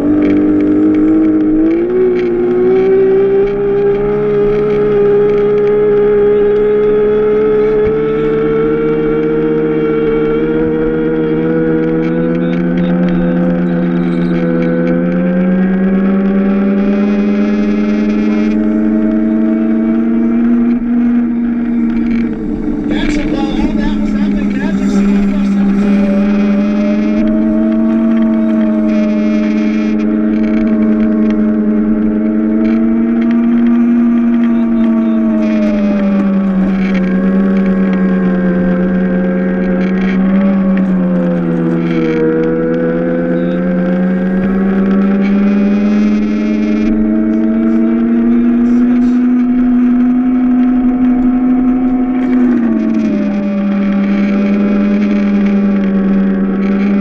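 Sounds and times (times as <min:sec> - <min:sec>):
electric motor whining: 0:00.0 - 0:57.0.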